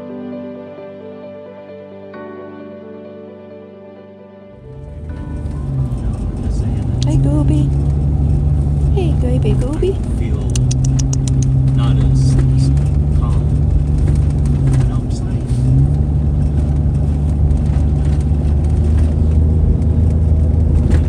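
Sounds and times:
car engine and road drone: 0:04.5 - 0:21.0
faint clicks: 0:10.5 - 0:11.6.

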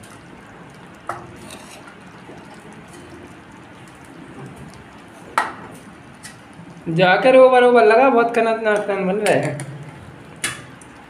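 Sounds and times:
ladle stirring thick food: 0:00.0 - 0:06.8.

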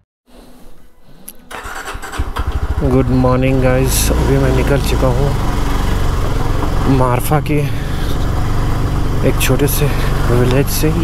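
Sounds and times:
motorcycle engine running: 0:01.5 - 0:11.0.

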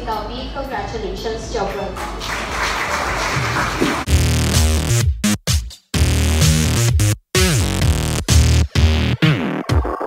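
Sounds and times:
music: 0:00.0 - 0:10.0
audience applauding: 0:02.0 - 0:04.1.

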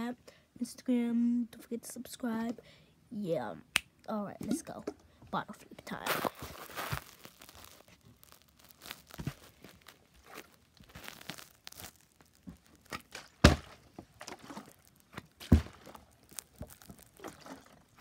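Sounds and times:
water bottle thudding on carpet: 0:13.4 - 0:13.9.

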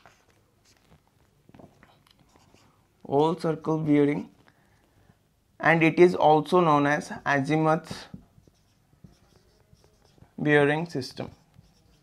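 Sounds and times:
marker pen scratching on whiteboard: 0:02.2 - 0:02.8, 0:08.0 - 0:12.0.

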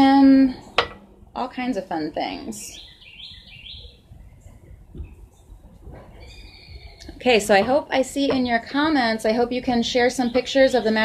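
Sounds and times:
low background noise: 0:00.0 - 0:11.0
bird chirping: 0:02.6 - 0:05.5, 0:06.1 - 0:07.6.

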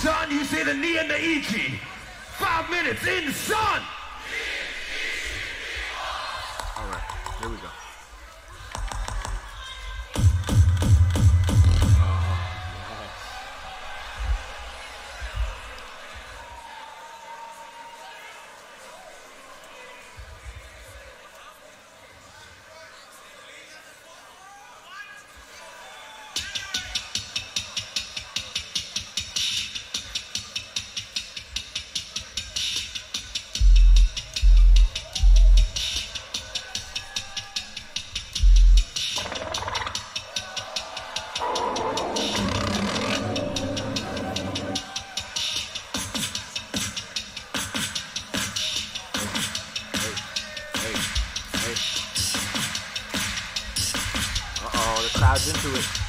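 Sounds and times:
looped hi-hat-like beatbox rhythm: 0:10.2 - 0:12.2, 0:26.4 - 0:56.0.

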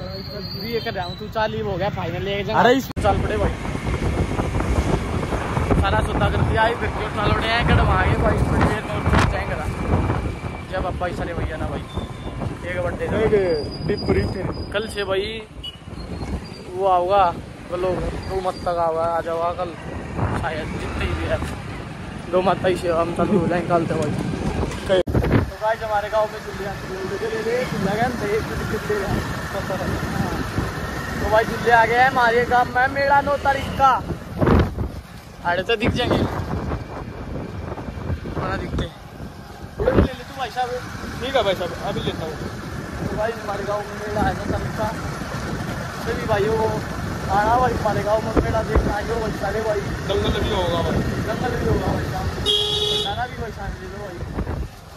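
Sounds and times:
man talking: 0:00.0 - 0:03.6, 0:12.6 - 0:15.5, 0:24.8 - 0:30.4, 0:46.0 - 0:52.4
road noise: 0:00.0 - 0:54.9.

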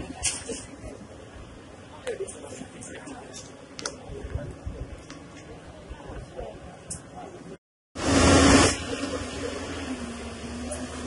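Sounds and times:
backhoe engine humming: 0:00.0 - 0:11.0.

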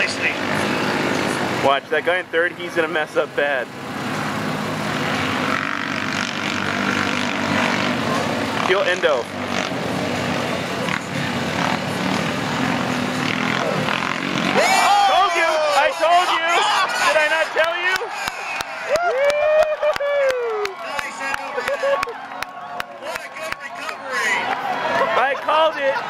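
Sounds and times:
racing engines droning: 0:00.0 - 0:26.0
spectators shouting and whooping: 0:14.4 - 0:26.0.

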